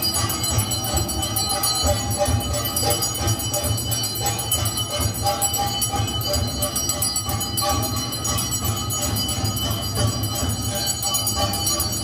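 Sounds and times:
temple bells ringing: 0:00.0 - 0:12.0.

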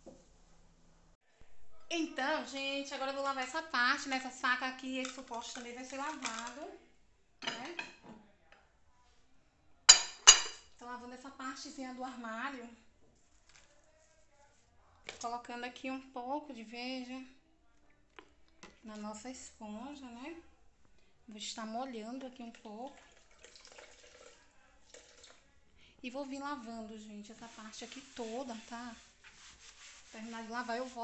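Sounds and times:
kitchenware clinking: 0:04.8 - 0:06.7, 0:07.4 - 0:08.2, 0:09.9 - 0:10.8
tap water running onto sponge: 0:22.6 - 0:25.4, 0:27.4 - 0:31.0.

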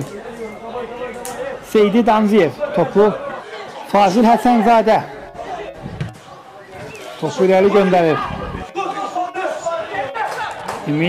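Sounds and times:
players calling: 0:00.0 - 0:11.0
football thuds: 0:05.9 - 0:06.9.

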